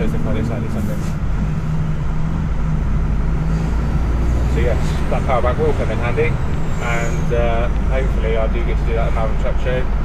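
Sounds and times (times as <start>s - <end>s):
truck diesel engine drone: 0.0s - 10.0s.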